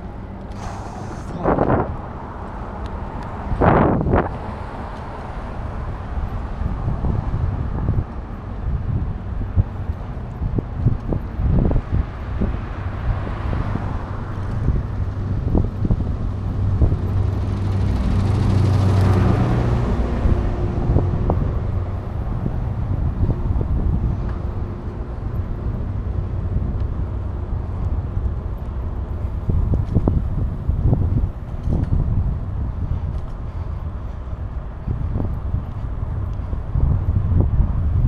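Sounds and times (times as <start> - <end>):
vehicle passing by: 0.0 - 8.0, 11.6 - 35.3
road noise: 0.0 - 38.0
wind buffeting microphone: 0.0 - 38.0.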